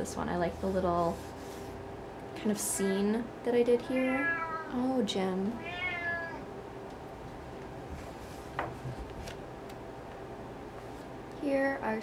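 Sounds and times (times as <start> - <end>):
cat meowing: 4.1 - 4.7, 5.6 - 6.5.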